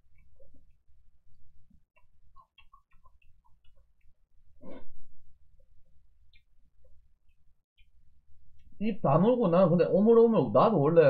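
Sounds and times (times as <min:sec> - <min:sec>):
man chewing food: 0:00.0 - 0:08.8
wet mouth clicks and smacks: 0:02.0 - 0:04.2.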